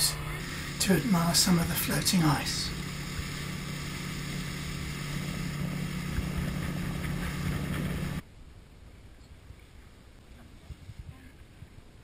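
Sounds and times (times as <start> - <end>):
outboard motor running: 0.4 - 8.2.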